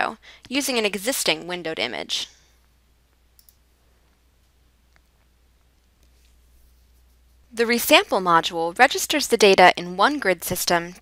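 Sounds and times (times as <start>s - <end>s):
computer mouse clicks: 3.4s - 3.6s.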